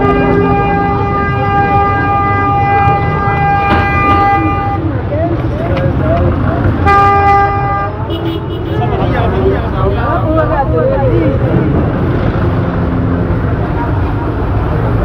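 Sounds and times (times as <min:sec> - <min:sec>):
vehicle horn: 0:00.0 - 0:05.0, 0:06.8 - 0:09.0
crowd noise: 0:00.0 - 0:15.0.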